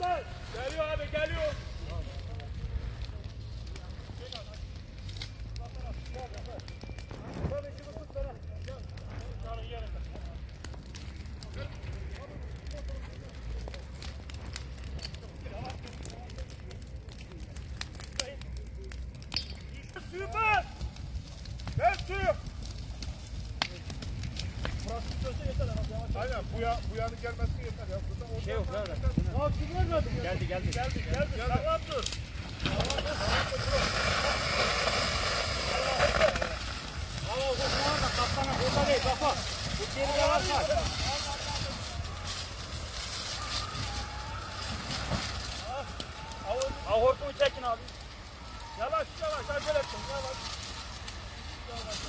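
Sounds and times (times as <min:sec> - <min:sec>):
dry grass burning with crackles: 0:00.0 - 0:52.0
people calling out: 0:40.0 - 0:44.8, 0:45.6 - 0:47.6, 0:48.2 - 0:51.0.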